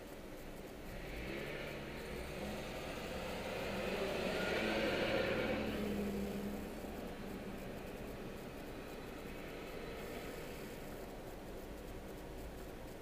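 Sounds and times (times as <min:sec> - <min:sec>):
car engine accelerating: 0:00.8 - 0:12.7.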